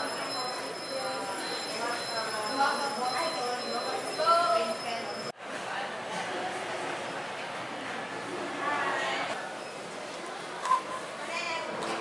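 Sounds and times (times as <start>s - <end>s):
indistinct chatter of customers: 0.0s - 12.0s.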